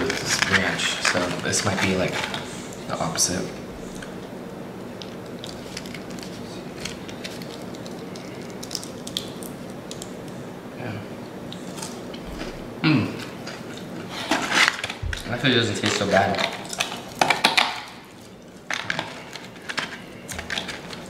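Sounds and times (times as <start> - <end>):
steady low hum: 0.0 - 21.0
person chewing crispy chicken: 5.0 - 10.4.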